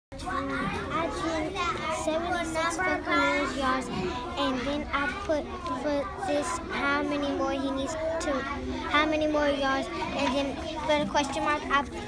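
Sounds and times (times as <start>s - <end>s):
children chattering: 0.1s - 12.0s
girl speaking: 0.2s - 12.0s.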